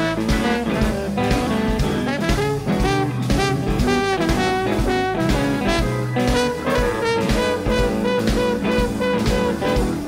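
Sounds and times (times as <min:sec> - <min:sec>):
blues band playing: 0:00.0 - 0:10.0
drums steady beat: 0:00.0 - 0:10.0
trombone solo: 0:00.0 - 0:10.0.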